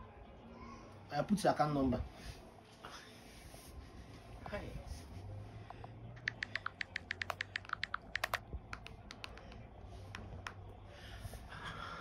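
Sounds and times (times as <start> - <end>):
smartphone keypad clicks: 6.2 - 10.6.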